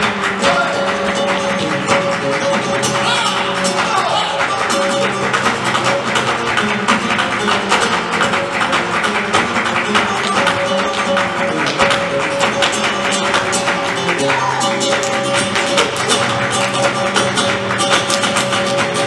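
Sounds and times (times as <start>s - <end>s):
acoustic guitar playing: 0.0s - 19.0s
hand-clapping: 0.0s - 19.0s.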